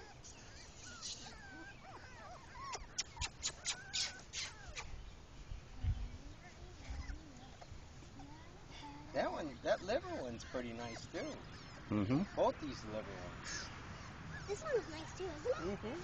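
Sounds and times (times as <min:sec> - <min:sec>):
puppies whimpering: 0:00.0 - 0:04.9, 0:06.4 - 0:16.0.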